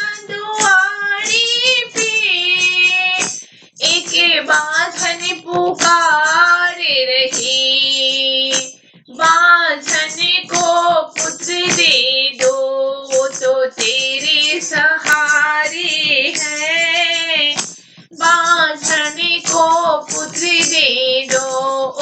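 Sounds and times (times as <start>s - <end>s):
high voice singing devotional song: 0.0s - 22.0s
steady percussion beat: 0.0s - 22.0s.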